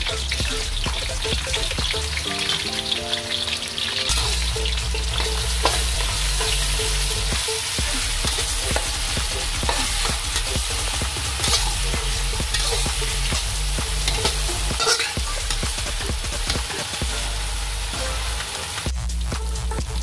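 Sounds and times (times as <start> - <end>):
food sizzling in hot oil: 0.0 - 20.0
metal spatula scraping a pan: 4.1 - 17.1.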